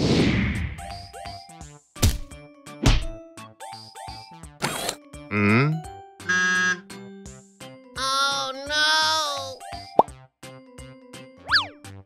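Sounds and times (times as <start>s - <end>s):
light children's music: 0.8s - 12.0s.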